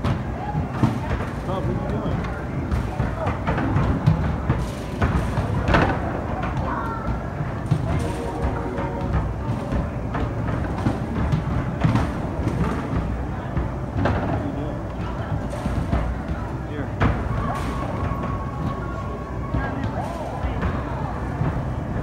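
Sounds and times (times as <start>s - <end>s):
basketballs thudding on backboards: 0.0s - 21.8s
music: 0.0s - 22.0s.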